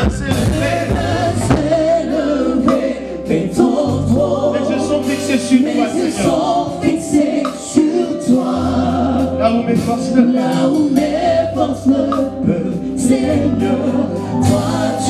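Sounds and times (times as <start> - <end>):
drum kit: 0.0 - 15.0
keyboards: 0.0 - 15.0
sustained bass notes: 0.0 - 15.0
man singing into microphone: 2.6 - 14.1.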